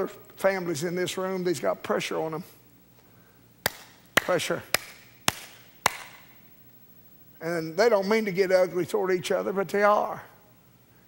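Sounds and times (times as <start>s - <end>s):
hands clapping: 3.6s - 6.3s.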